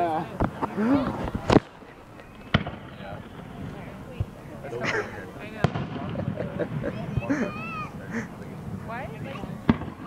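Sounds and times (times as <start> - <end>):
crowd voices: 0.0 - 10.0
firework shells bursting: 1.3 - 3.8.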